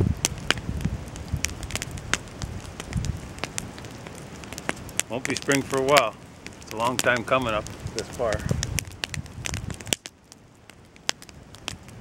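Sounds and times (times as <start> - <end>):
wind on microphone: 0.0 - 10.0, 11.2 - 12.0
sharp ticks and clicks: 1.2 - 12.0.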